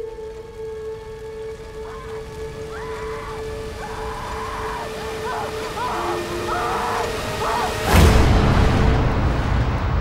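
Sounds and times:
sustained low drone: 0.0s - 10.0s.

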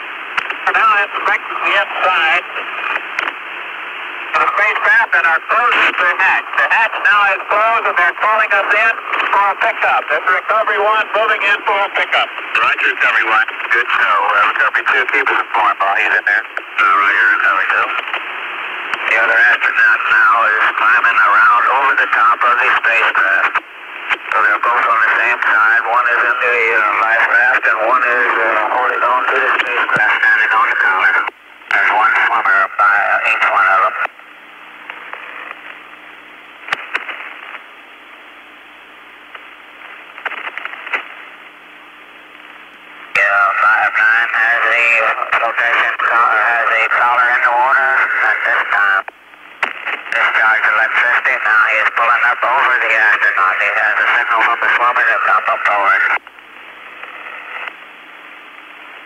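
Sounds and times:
faint steady hum: 0.0s - 59.0s
radio channel hiss: 0.0s - 59.0s
garbled radio voices: 0.4s - 3.5s, 4.2s - 34.2s, 43.0s - 57.8s.

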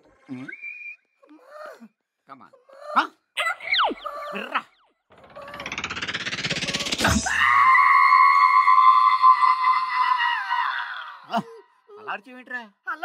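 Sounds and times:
loud high-pitched scream: 7.0s - 11.4s.

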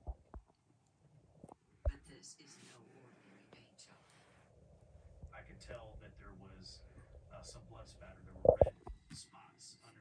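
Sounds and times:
faint whispered speech: 1.9s - 4.5s, 5.3s - 10.0s.

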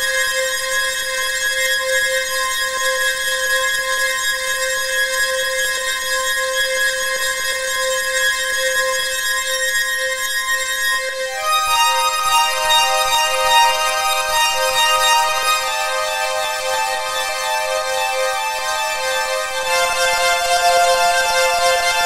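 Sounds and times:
synthesized drone: 19.4s - 22.0s.

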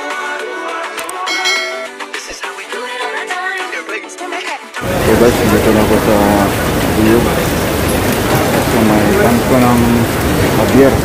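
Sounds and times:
background music: 0.0s - 5.6s
bright bell chime: 1.3s - 2.2s.

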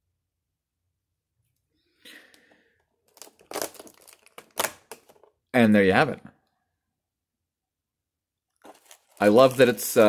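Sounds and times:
cardboard tearing and crinkling: 3.1s - 5.2s, 8.6s - 10.0s.

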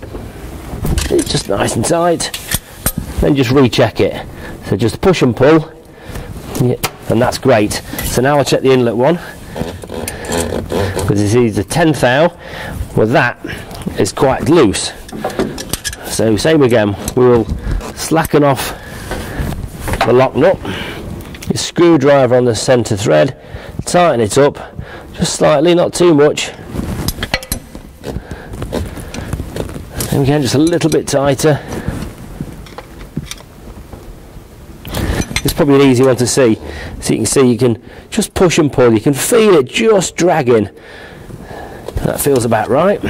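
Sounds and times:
man talking under his breath: 6.6s - 9.4s, 22.0s - 26.6s, 30.0s - 31.9s.

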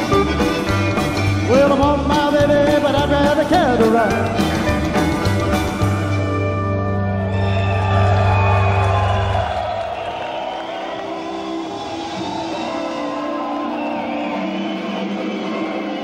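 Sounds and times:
accordion: 0.0s - 7.1s
upright bass: 0.0s - 8.8s
electric guitar: 0.0s - 9.6s.

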